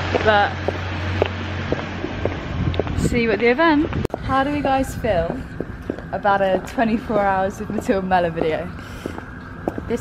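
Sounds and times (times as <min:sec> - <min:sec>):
faint footsteps: 0:00.0 - 0:10.0
vehicle engine rumble: 0:00.0 - 0:10.0
wind buffeting microphone: 0:00.0 - 0:10.0.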